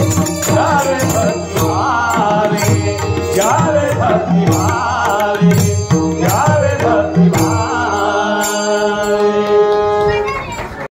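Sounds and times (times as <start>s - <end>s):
man singing: 0.0s - 9.9s
harmonium: 0.0s - 10.9s.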